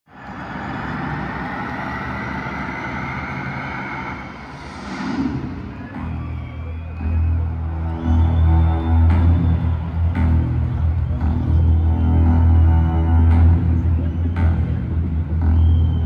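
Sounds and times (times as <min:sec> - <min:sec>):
stadium crowd noise: 0:00.0 - 0:16.0
deep bass drone from pa: 0:00.2 - 0:16.0.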